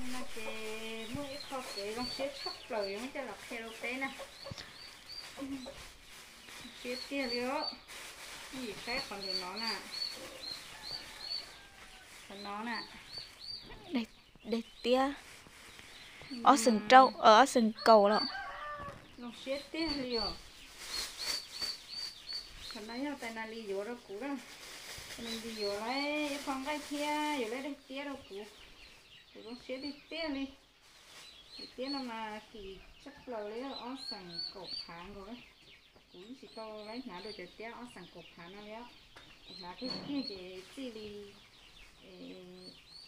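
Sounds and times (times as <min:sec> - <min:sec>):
woman talking: 0:00.0 - 0:04.7, 0:05.4 - 0:05.8, 0:06.6 - 0:07.8, 0:08.5 - 0:10.0, 0:12.3 - 0:13.0, 0:13.7 - 0:15.2, 0:16.2 - 0:18.4, 0:19.2 - 0:20.4, 0:22.7 - 0:24.5, 0:25.2 - 0:28.6, 0:29.4 - 0:30.6, 0:31.6 - 0:35.4, 0:36.2 - 0:38.9, 0:39.5 - 0:41.4, 0:42.0 - 0:42.8
woman talking loudly: 0:16.3 - 0:18.3.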